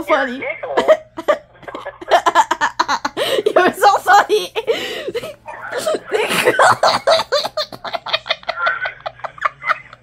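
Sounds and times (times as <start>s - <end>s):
girl giggling: 0.8s - 10.0s.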